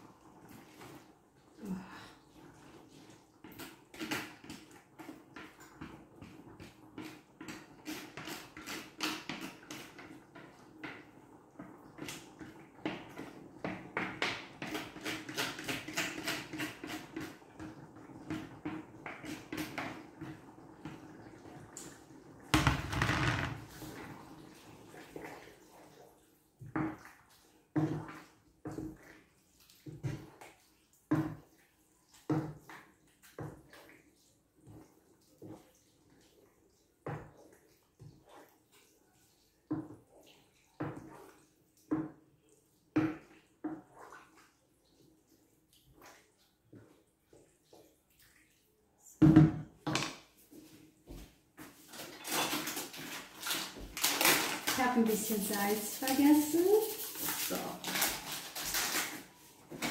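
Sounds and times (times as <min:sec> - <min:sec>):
utensil scraping plastic colander: 0:07.0 - 0:10.1, 0:14.6 - 0:17.4, 0:51.9 - 0:59.9.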